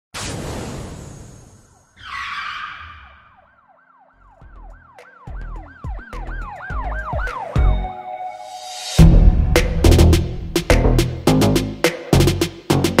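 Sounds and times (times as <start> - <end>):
siren-like rising and falling tone: 0.9 - 9.1
bass beat: 5.3 - 7.8, 9.0 - 13.0
heavy low hit: 9.0 - 11.3.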